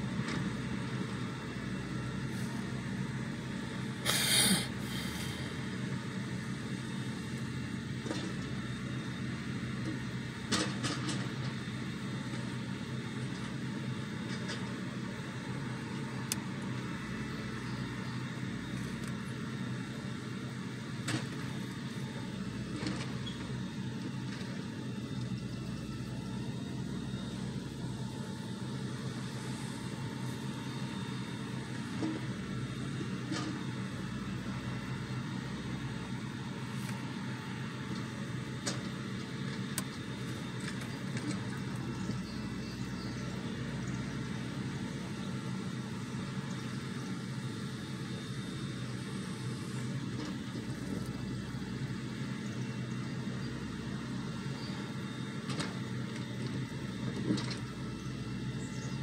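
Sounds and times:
loader engine humming: 0:00.0 - 0:59.0.

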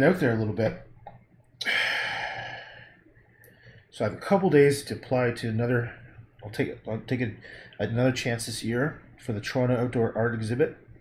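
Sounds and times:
man sighing: 0:01.6 - 0:02.8.

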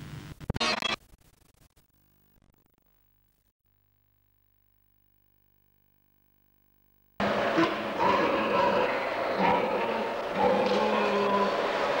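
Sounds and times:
pig barn din: 0:07.2 - 0:12.0
pigs grunting and squealing: 0:07.2 - 0:12.0.

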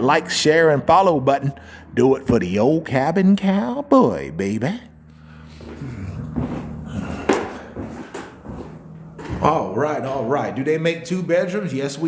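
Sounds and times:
steady low hum: 0:00.0 - 0:12.0
footsteps on wooden floorboards: 0:05.5 - 0:09.6.

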